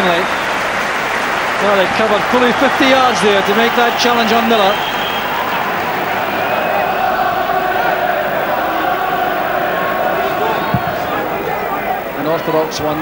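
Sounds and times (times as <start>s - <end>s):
stadium crowd chanting: 0.4s - 13.0s.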